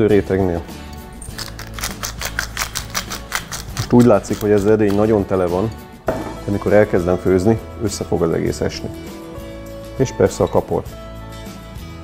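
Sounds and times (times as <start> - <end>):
soft background music: 0.0 - 12.0
seasoning sprinkled on cabbage: 1.3 - 4.6.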